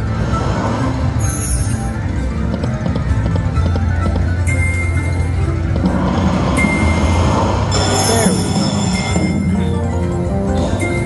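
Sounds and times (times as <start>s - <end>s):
slot machine music: 0.0s - 11.0s
sustained high chime tone: 6.6s - 9.9s.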